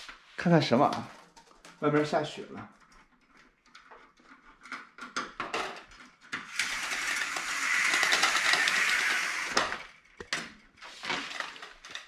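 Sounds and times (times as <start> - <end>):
plastic blind slats clattering: 0.9 - 12.0.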